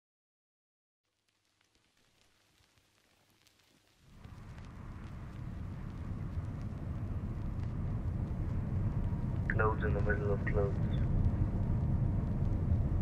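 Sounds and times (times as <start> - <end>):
low steady rumble: 4.1 - 13.0.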